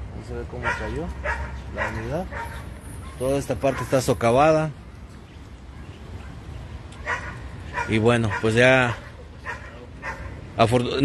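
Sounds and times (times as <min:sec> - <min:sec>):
man talking: 0:00.0 - 0:02.4, 0:03.2 - 0:04.8, 0:07.8 - 0:11.0
outdoor background noise: 0:00.0 - 0:11.0.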